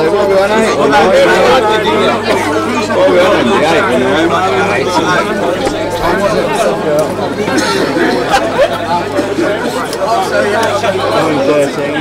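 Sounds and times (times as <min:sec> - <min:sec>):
people chatting: 0:00.0 - 0:12.0
steady low hum: 0:00.8 - 0:11.2.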